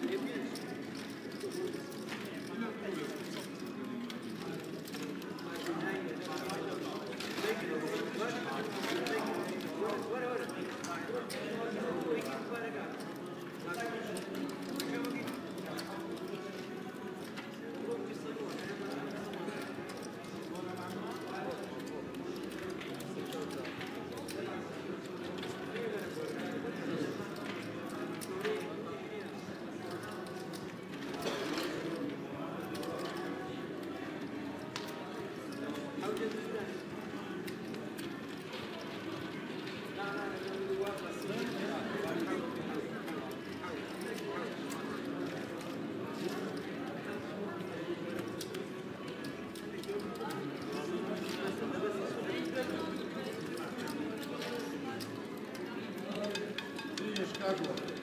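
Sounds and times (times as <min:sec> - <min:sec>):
murmur of voices: 0:00.0 - 0:58.0.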